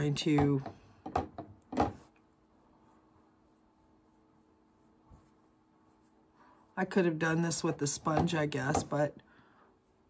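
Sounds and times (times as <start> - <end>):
fingertips rubbing skin: 2.0 - 8.6.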